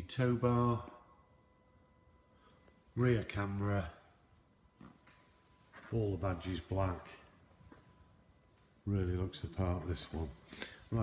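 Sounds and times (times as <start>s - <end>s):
man speaking: 0.0s - 1.1s, 2.9s - 4.2s, 5.7s - 7.5s, 8.8s - 11.0s
faint steady tone: 0.0s - 11.0s.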